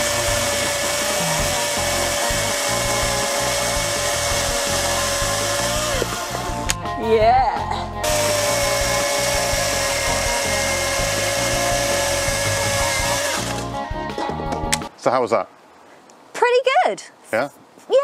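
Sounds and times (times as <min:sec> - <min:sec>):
electric chainsaw cutting log: 0:00.0 - 0:06.8, 0:08.0 - 0:13.7.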